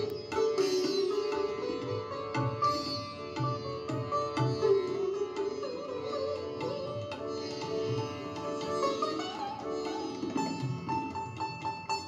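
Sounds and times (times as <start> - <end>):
plucked string instrument: 0.0 - 12.0.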